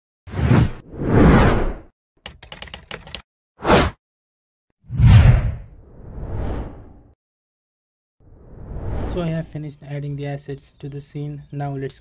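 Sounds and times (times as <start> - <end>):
sharp typing-like clicks: 2.2 - 3.2
whooshes: 4.9 - 7.0.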